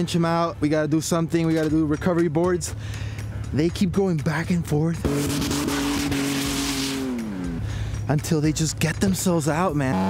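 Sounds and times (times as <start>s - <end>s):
truck engine at high revs: 4.8s - 8.1s, 9.7s - 10.0s.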